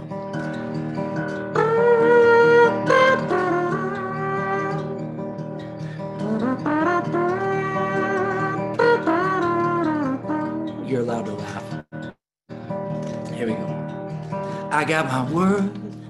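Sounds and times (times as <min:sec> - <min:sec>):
strummed acoustic guitar: 0:00.0 - 0:16.0
man imitating a trumpet: 0:06.2 - 0:10.8.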